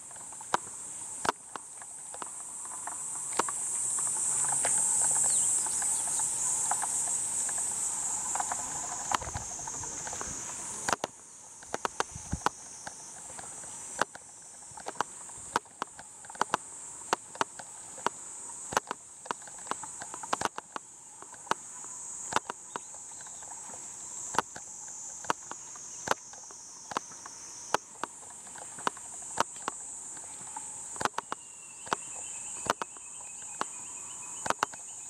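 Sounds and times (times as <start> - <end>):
insect chorus: 0.0 - 35.0.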